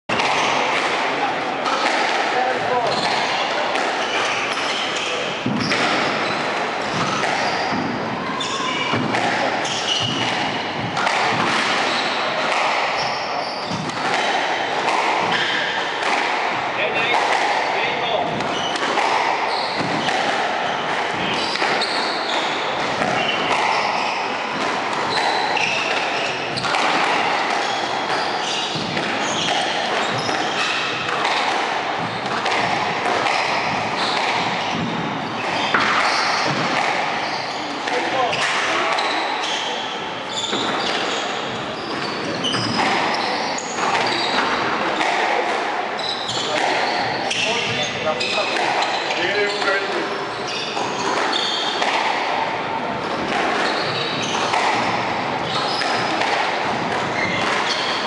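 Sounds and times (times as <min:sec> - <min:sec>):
murmur of voices: 0:00.1 - 0:58.0
squash ball struck by rackets: 0:00.1 - 0:58.0
shoes squeaking on wooden floor: 0:01.6 - 0:03.4, 0:04.0 - 0:45.2, 0:46.0 - 0:58.0.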